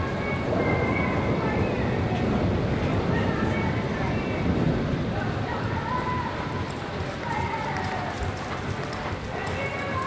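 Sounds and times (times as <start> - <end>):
horse hoofbeats on sand: 7.0 - 10.0.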